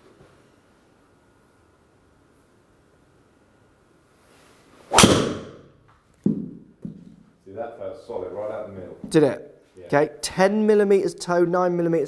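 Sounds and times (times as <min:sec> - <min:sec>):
golf club swish: 0:04.3 - 0:05.7
golf ball struck crack: 0:04.9 - 0:05.8.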